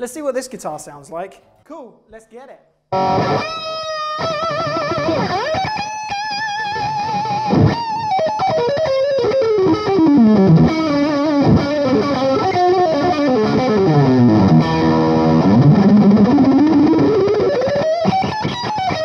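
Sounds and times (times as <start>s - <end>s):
amplified electric guitar lead: 2.9s - 19.0s.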